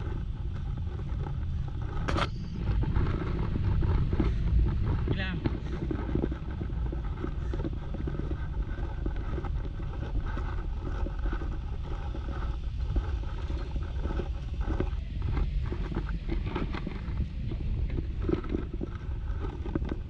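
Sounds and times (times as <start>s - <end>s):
traffic rumble: 0.0s - 20.0s.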